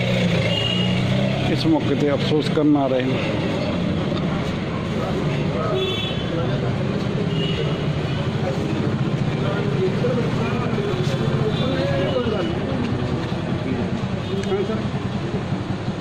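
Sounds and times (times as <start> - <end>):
people talking indistinctly: 1.4 - 15.5.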